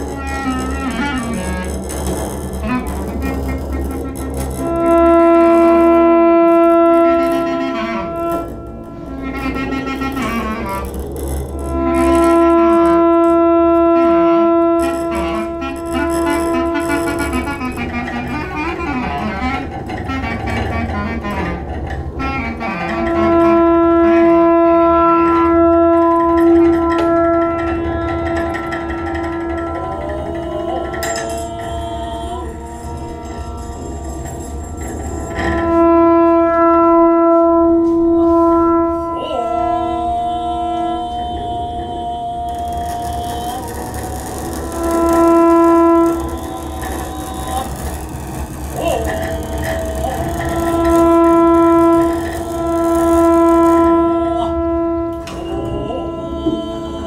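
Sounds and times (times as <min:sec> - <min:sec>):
clarinet holding long note: 0:00.0 - 0:57.0
low steady drone: 0:00.0 - 0:57.0
person chanting: 0:25.2 - 0:36.0, 0:38.0 - 0:57.0
tone sliding upward: 0:25.6 - 0:57.0.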